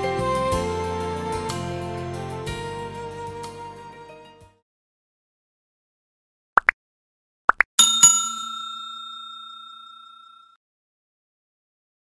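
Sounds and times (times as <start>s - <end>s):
bell chime ringing: 7.8s - 10.6s.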